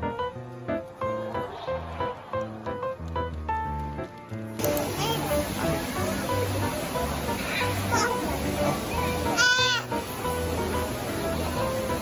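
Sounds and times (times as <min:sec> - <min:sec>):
background music: 0:00.0 - 0:12.0
toddler squealing: 0:09.3 - 0:10.0.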